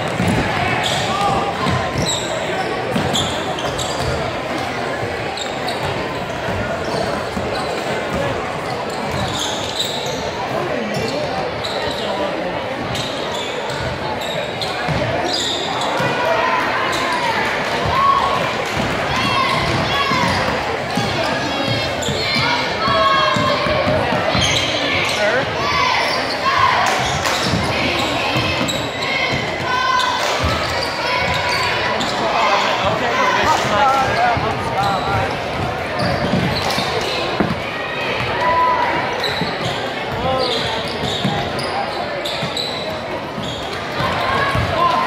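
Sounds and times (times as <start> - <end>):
basketball bouncing on court: 0.0 - 2.3, 2.9 - 4.2, 14.9 - 15.2, 18.7 - 22.2, 34.4 - 37.6
crowd and player voices: 0.0 - 45.0.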